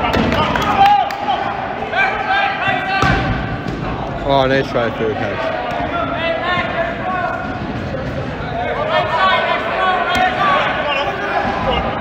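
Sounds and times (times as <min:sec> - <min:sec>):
players calling out and talking: 0:00.0 - 0:12.0.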